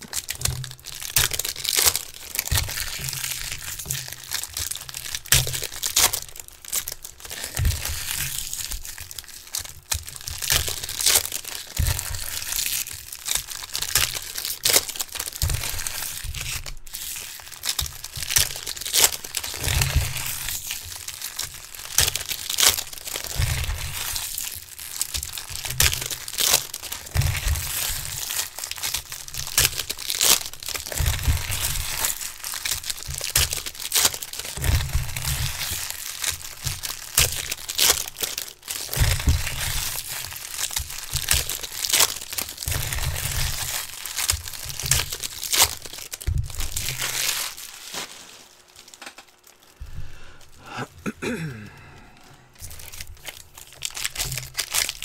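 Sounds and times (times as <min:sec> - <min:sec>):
foil wrappers crinkling and tearing: 0:00.0 - 0:55.0
dull low thumps: 0:49.8 - 0:51.0.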